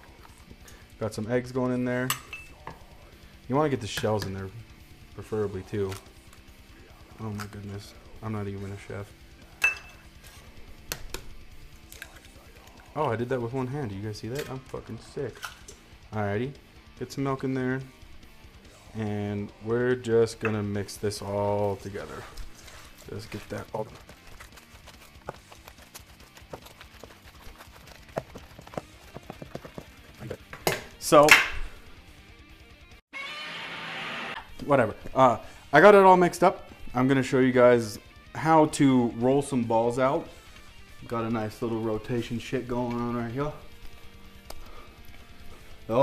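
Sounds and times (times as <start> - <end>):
hands squelching meat mix in bowl: 21.6 - 30.5.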